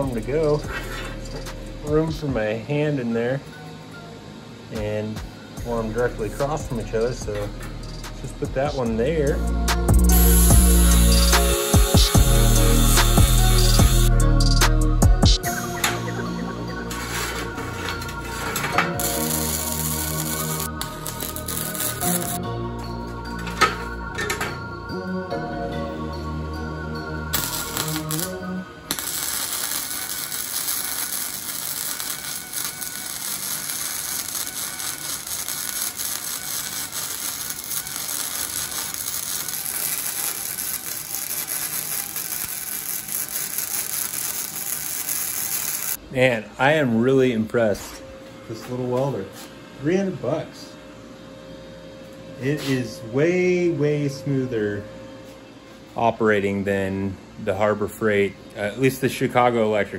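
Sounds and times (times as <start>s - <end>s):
welder crackling: 0.0s - 0.6s, 10.0s - 14.1s, 15.4s - 22.4s, 27.3s - 46.0s
background music with a beat: 9.3s - 28.4s.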